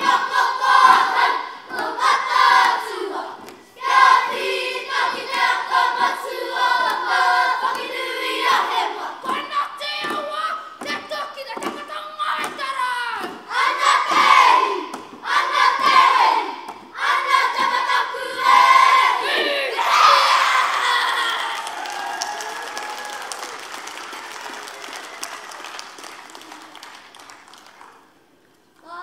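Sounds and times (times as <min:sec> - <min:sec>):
children shouting in unison: 0:18.4 - 0:21.7
audience cheering and applauding: 0:20.5 - 0:28.2.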